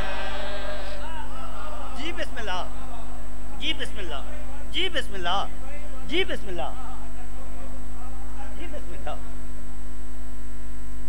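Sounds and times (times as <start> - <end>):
electrical mains hum: 0.0 - 11.0
man's voice: 1.0 - 9.4.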